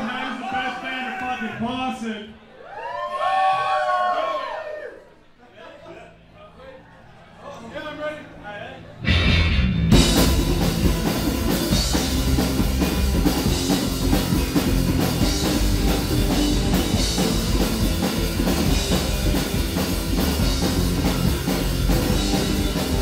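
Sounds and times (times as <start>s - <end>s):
bass guitar: 8.9s - 23.0s
drum kit beat: 9.0s - 23.0s
electric guitar: 9.0s - 23.0s.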